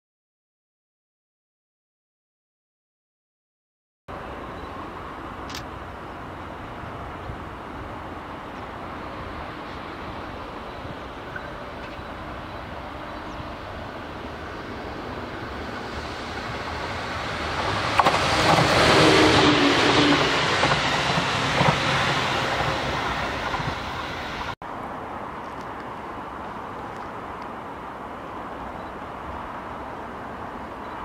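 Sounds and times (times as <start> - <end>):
electric train passing: 4.1 - 25.0.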